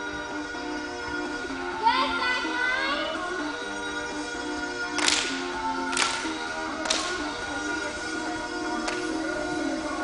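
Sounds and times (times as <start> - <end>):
upbeat dance music: 0.0 - 10.0.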